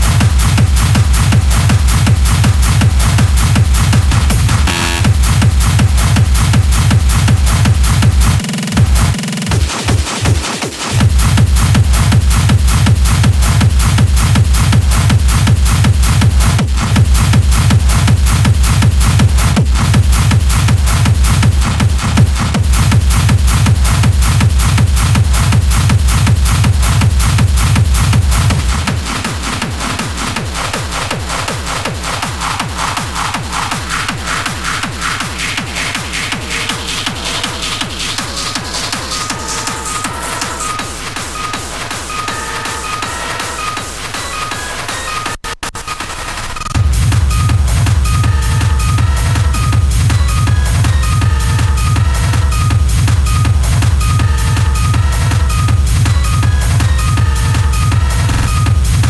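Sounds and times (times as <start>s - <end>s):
techno kick drum with heavy bass: 0.0s - 59.0s
short synth notes: 4.7s - 5.1s.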